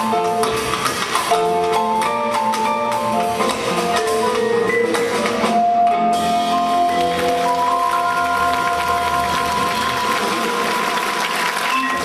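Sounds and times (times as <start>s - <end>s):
jazz group with vibraphone: 0.0s - 10.9s, 11.6s - 12.0s
audience applauding: 6.4s - 12.0s.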